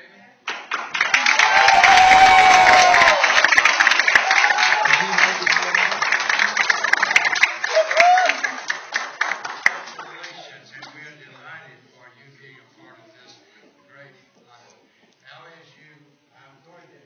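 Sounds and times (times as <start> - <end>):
children applauding: 0.5 - 10.5
voices whooping: 1.2 - 3.4, 4.1 - 5.2, 7.6 - 8.6.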